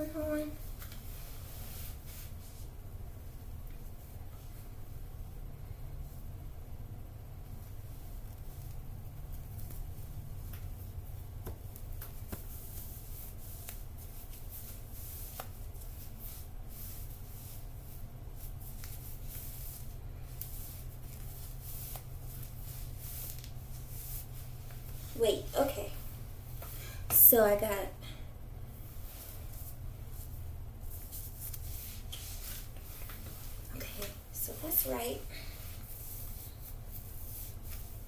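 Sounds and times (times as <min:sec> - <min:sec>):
steady low hum: 0:00.0 - 0:38.0
knit sock rustling on leg: 0:07.5 - 0:26.9, 0:28.8 - 0:38.0.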